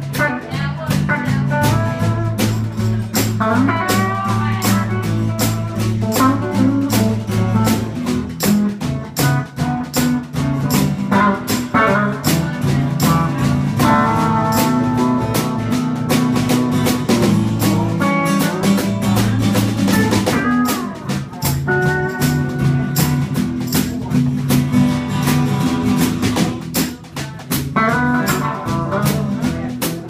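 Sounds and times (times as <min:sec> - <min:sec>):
blues band playing: 0:00.0 - 0:30.0
drum kit steady beat: 0:00.0 - 0:30.0
guitar bending notes: 0:00.0 - 0:30.0.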